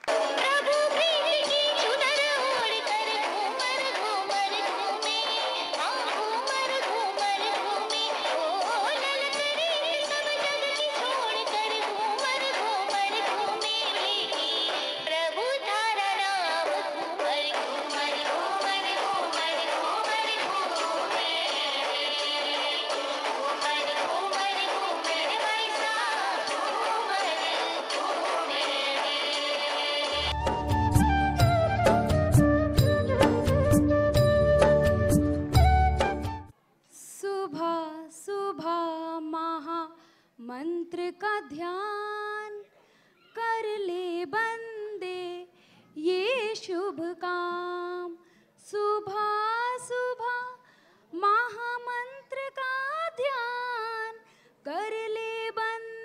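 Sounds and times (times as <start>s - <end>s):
instrumental backing: 30.1s - 36.5s
singer breathing: 40.0s - 40.4s, 42.7s - 43.2s, 45.5s - 46.0s, 48.2s - 48.6s, 50.6s - 51.1s, 54.2s - 54.6s.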